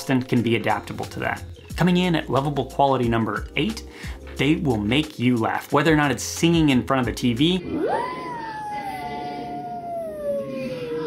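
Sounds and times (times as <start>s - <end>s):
dog howling: 7.6s - 11.0s.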